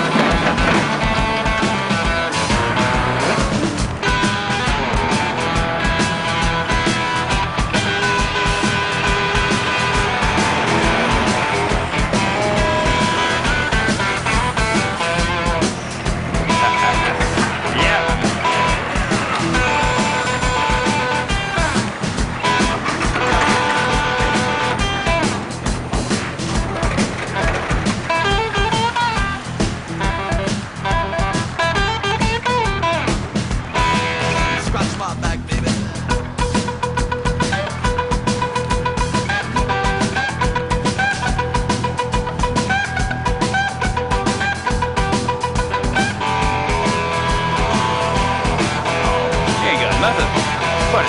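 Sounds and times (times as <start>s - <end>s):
instrumental rock music: 0.0s - 51.0s.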